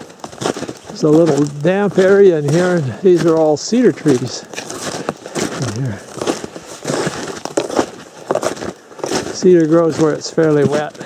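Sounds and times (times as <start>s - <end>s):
footsteps crunching in snow: 0.0s - 11.0s.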